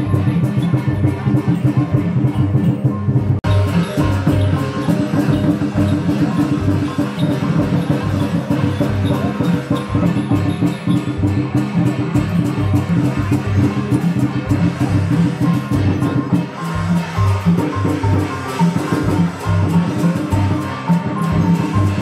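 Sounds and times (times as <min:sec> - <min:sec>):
music with busy percussion beat: 0:00.0 - 0:22.0.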